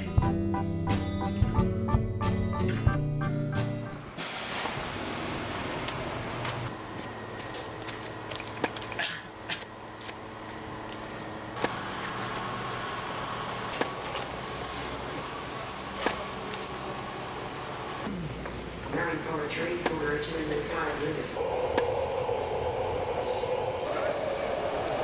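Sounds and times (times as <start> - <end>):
outdoor ambient rush: 3.6 - 25.0.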